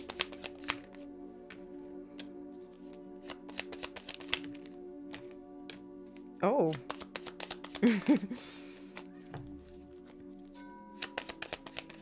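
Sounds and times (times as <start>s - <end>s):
cards being shuffled: 0.0s - 1.6s, 2.2s - 12.0s
soft background music: 0.0s - 12.0s.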